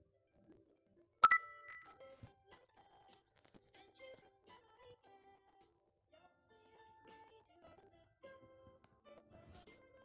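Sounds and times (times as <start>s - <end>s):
bright metallic ding: 1.2s - 1.9s.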